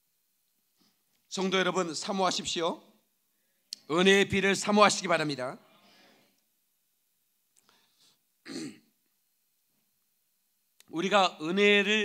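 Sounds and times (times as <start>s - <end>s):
faint breaths: 5.6s - 6.4s
man clearing his throat: 8.4s - 8.9s.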